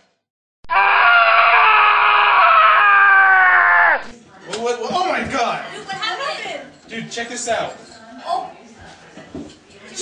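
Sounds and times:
person screaming high-pitched: 0.7 - 4.1.

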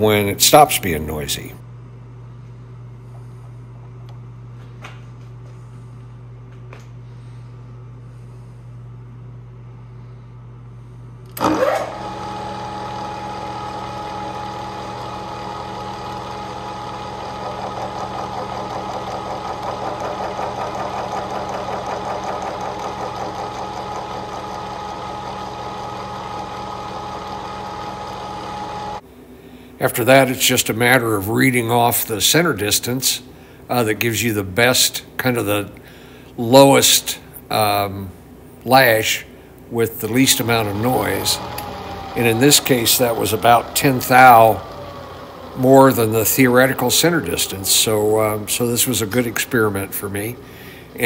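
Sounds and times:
low steady hum: 0.0 - 19.6, 24.3 - 51.0
gear whine: 11.2 - 29.0, 39.8 - 51.0.

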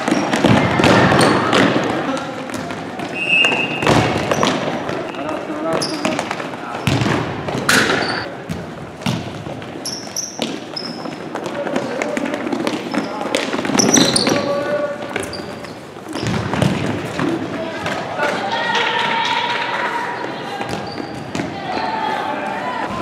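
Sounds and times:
sneakers squeaking: 0.0 - 23.0
ball kicked and thudding: 6.8 - 9.5.

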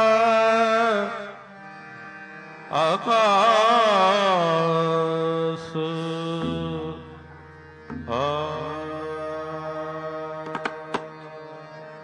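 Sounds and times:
harmonium drone: 0.0 - 12.0
man singing melismatic phrase: 5.5 - 7.3, 8.0 - 10.9.

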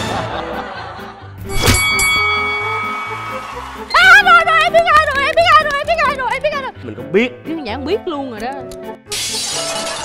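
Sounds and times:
bright chime: 1.5 - 4.2.

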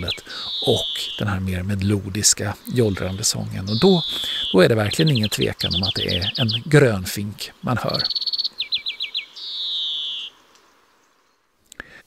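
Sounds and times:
finch singing buzzy wheeze: 0.0 - 1.2, 3.7 - 4.6, 8.0 - 10.3.

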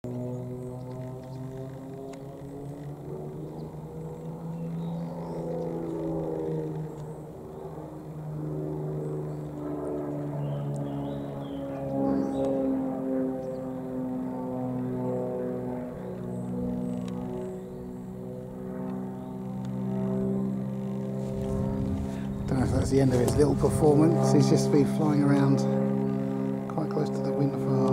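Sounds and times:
propeller plane engine droning: 0.0 - 27.9.

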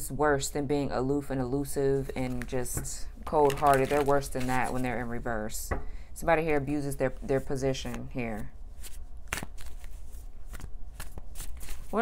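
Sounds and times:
low steady hum: 0.0 - 12.0
cards being shuffled: 2.2 - 4.9, 7.8 - 12.0.

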